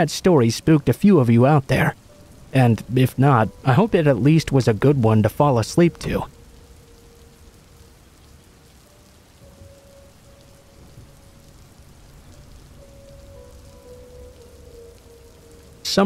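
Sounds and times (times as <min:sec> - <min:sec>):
faint held musical tones: 0:00.0 - 0:16.0
steady rain falling: 0:00.0 - 0:16.0.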